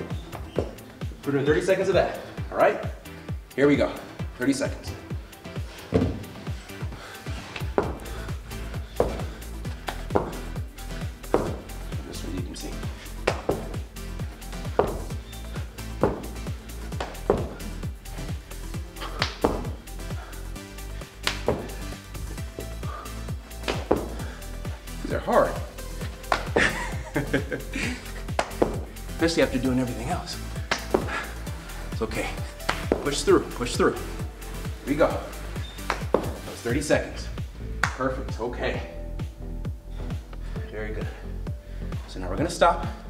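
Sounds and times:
background music with bass line: 0.0 - 43.0
feet thudding on gym floor: 0.2 - 1.0, 5.8 - 6.7, 7.3 - 8.2, 8.8 - 10.6, 11.2 - 11.7, 13.2 - 13.9, 14.6 - 17.7, 19.0 - 19.9, 21.2 - 23.0, 23.6 - 24.4, 26.0 - 26.8, 28.3 - 29.0, 30.6 - 31.4, 32.5 - 33.1, 35.6 - 36.6.

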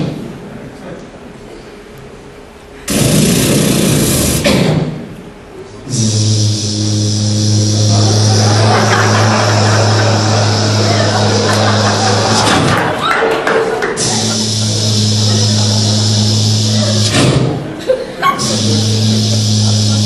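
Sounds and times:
low electric buzz: 2.0 - 13.0, 13.8 - 20.0
burst of hissing noise: 2.9 - 4.8, 5.9 - 12.9, 14.0 - 17.7, 18.4 - 20.0.

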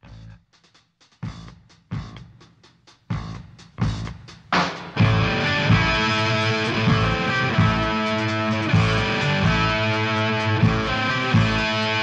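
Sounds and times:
drums: 0.0 - 12.0
electric guitar chords: 4.6 - 12.0.

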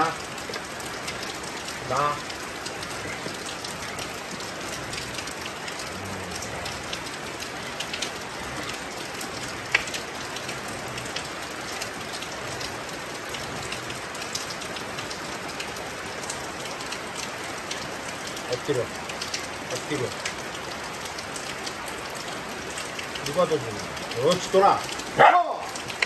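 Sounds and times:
steady rain falling: 0.0 - 26.0.

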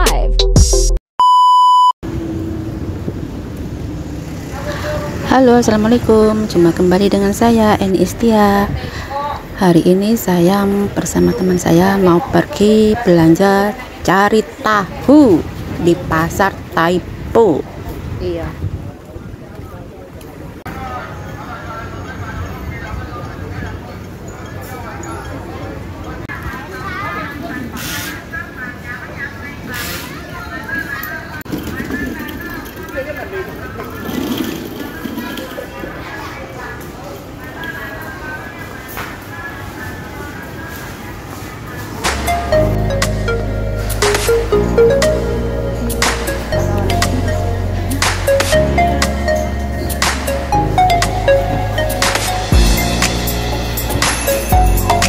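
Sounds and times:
intro music: 0.0 - 1.0, 42.0 - 55.0
electronic beep: 1.2 - 2.0
low street traffic noise: 2.0 - 55.0
people talking: 4.5 - 55.0.

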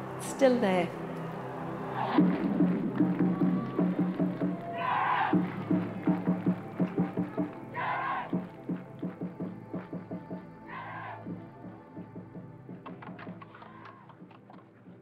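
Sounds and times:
music with percussive beat: 2.1 - 10.5.

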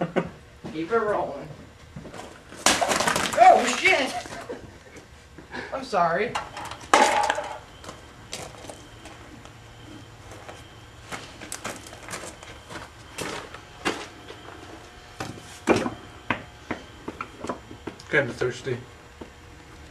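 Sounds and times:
low steady hum: 0.0 - 19.9.

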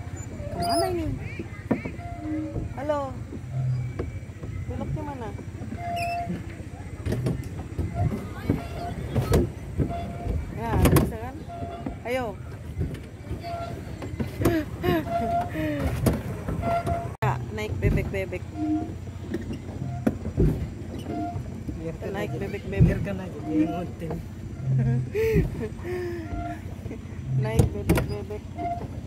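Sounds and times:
steady low rumble: 0.0 - 29.0
distant voices and calls: 17.9 - 29.0.

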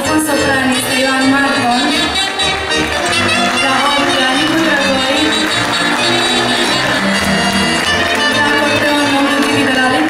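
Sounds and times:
electronic keyboard accompaniment: 0.0 - 10.0
wind instrument melody: 0.0 - 10.0.

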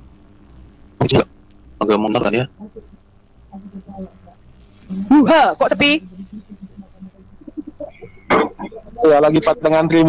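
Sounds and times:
low steady hum: 0.0 - 10.0
person speaking: 1.8 - 3.0, 3.6 - 10.0
faint voices murmuring: 1.8 - 10.0.

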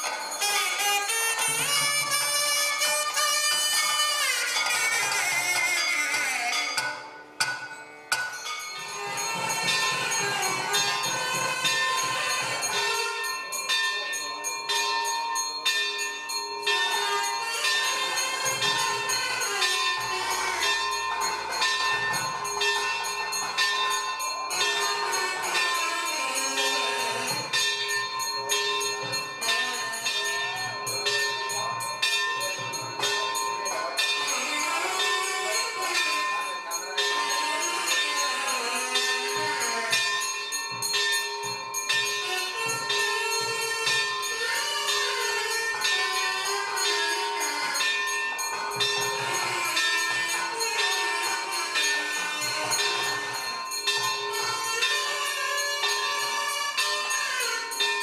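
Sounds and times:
temple bells ringing rapidly: 0.0 - 58.0.

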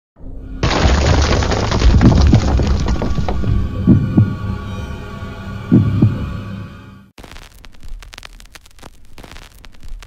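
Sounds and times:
heartbeat-like double thumps: 3.2 - 4.4, 5.7 - 6.3.

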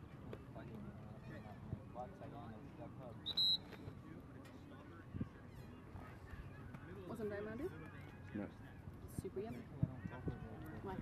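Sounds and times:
faint distant voices: 0.0 - 11.0
high-pitched whistle blast: 3.3 - 3.8.

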